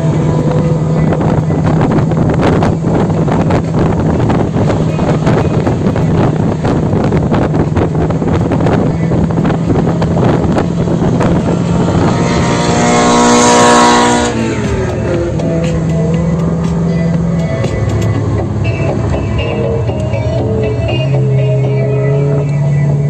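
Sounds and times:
low engine drone: 0.0s - 23.0s
road and wind noise: 0.0s - 23.0s
sports car engine passing: 0.0s - 23.0s.

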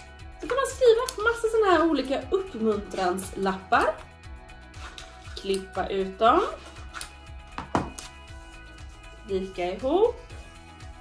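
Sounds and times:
quiet background music: 0.0s - 11.0s
scissors snipping paper: 6.6s - 7.2s.

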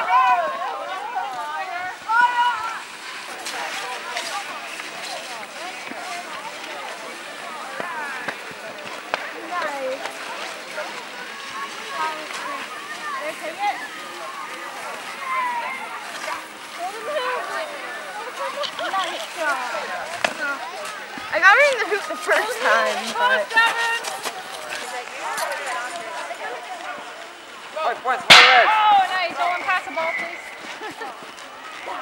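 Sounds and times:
children chattering: 0.0s - 32.0s.

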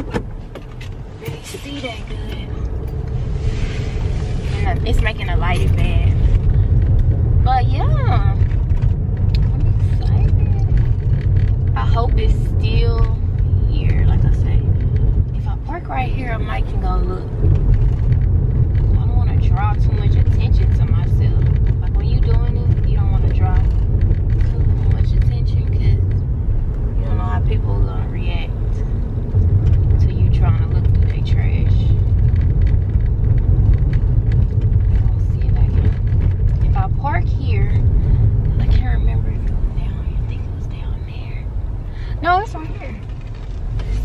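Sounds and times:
car cabin rumble: 0.0s - 44.0s.

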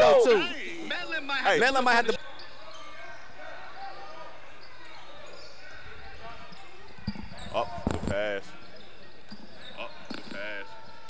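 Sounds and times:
echoing voices: 0.0s - 2.0s.

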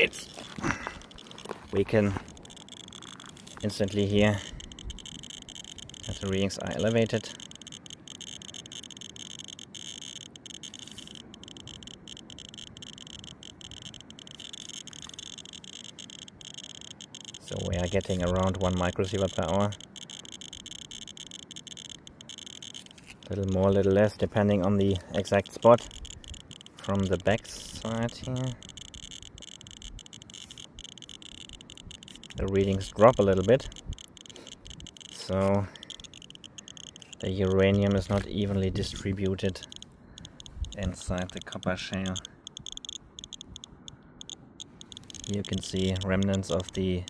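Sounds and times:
radiation detector clicking rapidly: 0.0s - 47.0s.

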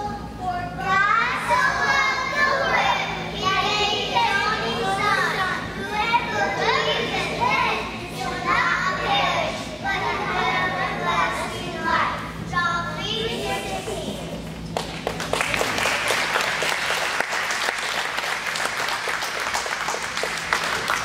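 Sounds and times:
steady low hum: 0.0s - 21.0s
children speaking in chorus: 0.8s - 12.0s.

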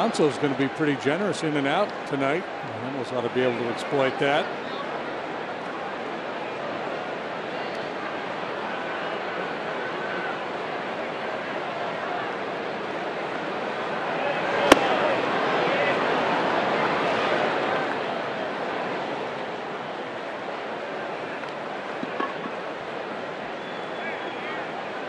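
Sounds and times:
ball popping into catcher's mitt: 14.7s - 15.0s.

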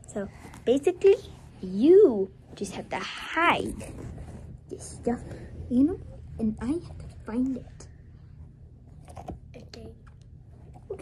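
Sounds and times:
soft rustles of handling: 0.0s - 6.3s
steady low hum: 0.0s - 11.0s.

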